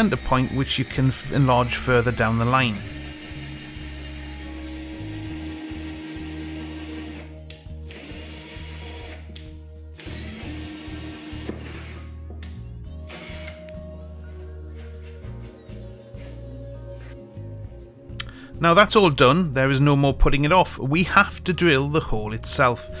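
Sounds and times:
cordless drill boring: 0:00.0 - 0:09.4, 0:10.0 - 0:12.1, 0:13.1 - 0:13.7
background music: 0:00.0 - 0:23.0.

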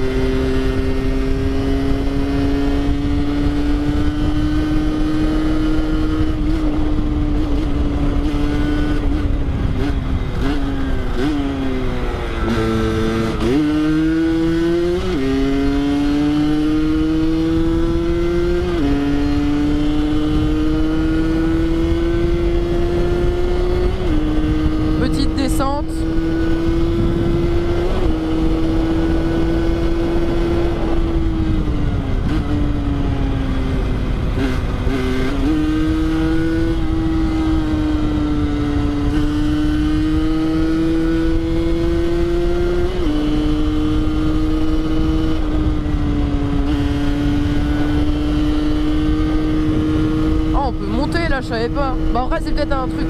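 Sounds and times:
motorcycle engine revving: 0:00.0 - 0:53.0
wind noise on microphone: 0:00.0 - 0:53.0.

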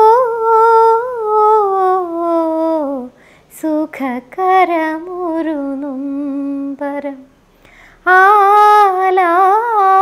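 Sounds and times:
woman singing unaccompanied: 0:00.0 - 0:07.4, 0:08.0 - 0:10.0
faint breath: 0:03.1 - 0:03.6, 0:07.5 - 0:08.1.

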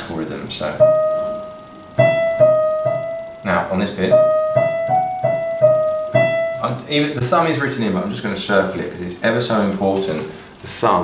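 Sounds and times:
digital piano notes: 0:00.0 - 0:08.3.

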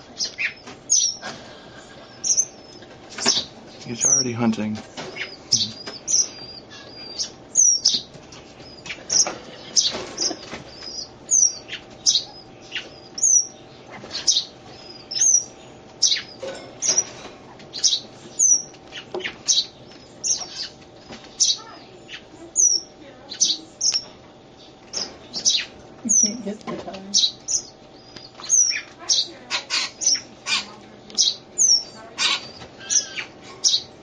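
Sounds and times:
faint steady hum: 0:00.0 - 0:34.0
bird chirping: 0:00.1 - 0:01.3, 0:02.0 - 0:17.1, 0:17.7 - 0:26.5, 0:27.1 - 0:33.9.

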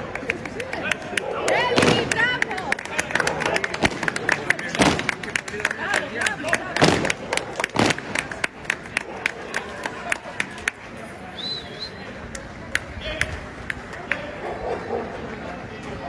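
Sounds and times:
spectators clapping: 0:00.0 - 0:11.0
murmur of crowd voices: 0:00.0 - 0:16.0.

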